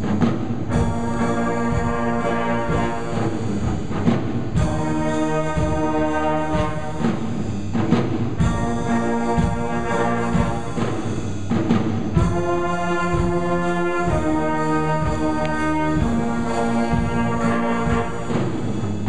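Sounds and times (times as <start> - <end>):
jazz band playing swing: 0.0 - 19.0.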